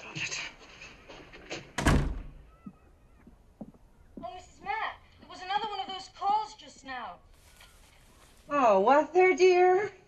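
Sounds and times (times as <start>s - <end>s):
heavy wooden door slamming: 1.8s - 2.4s.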